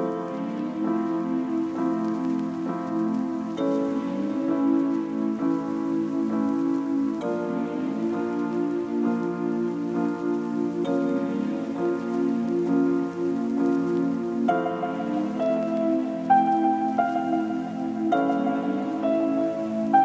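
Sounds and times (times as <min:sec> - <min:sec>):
faint steady hiss: 0:00.0 - 0:20.0
lo-fi music soft notes and chords: 0:00.0 - 0:20.0.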